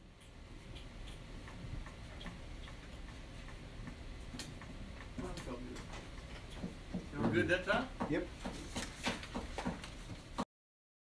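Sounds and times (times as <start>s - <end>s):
faint steady ticking: 0.0s - 8.6s
low room noise: 0.0s - 10.4s.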